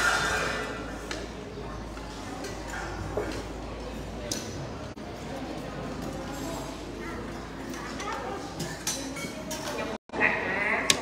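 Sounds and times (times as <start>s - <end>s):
chatter of many voices: 0.0s - 11.0s
spoons clinking on steel pots: 8.6s - 9.8s.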